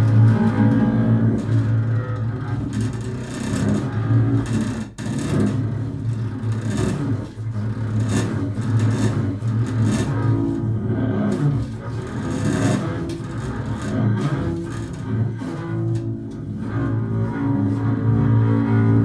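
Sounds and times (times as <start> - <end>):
bowed double bass: 0.0 - 19.0.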